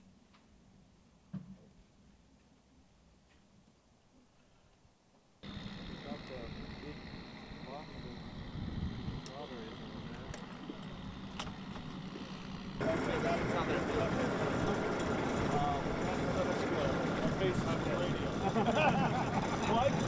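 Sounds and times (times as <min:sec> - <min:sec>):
steady background noise: 0:05.2 - 0:20.0
distant people talking: 0:12.8 - 0:20.0.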